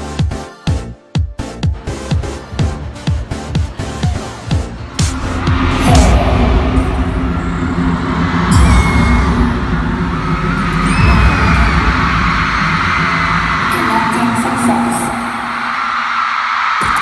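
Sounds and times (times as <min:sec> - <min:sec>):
loud concert music: 0:00.0 - 0:17.0
crowd screaming: 0:03.7 - 0:17.0
deep bass hits: 0:04.5 - 0:14.8.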